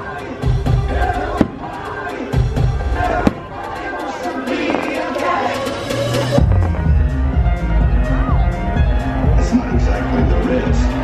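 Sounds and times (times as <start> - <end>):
show music over loudspeakers: 0.0 - 11.0
firework sharp bangs: 1.3 - 2.0, 3.1 - 3.9
low firework booms: 3.2 - 3.6.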